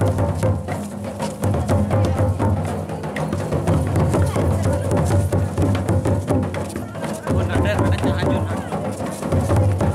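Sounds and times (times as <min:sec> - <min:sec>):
drums beating: 0:00.0 - 0:09.9
folk dance music: 0:00.0 - 0:09.9
voices: 0:06.5 - 0:09.9.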